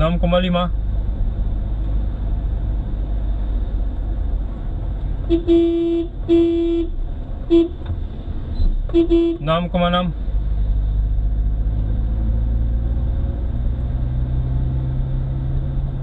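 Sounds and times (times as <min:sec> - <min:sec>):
car driving rumble inside cabin: 0:00.0 - 0:16.0
car horn honking: 0:05.2 - 0:07.8, 0:08.9 - 0:09.7.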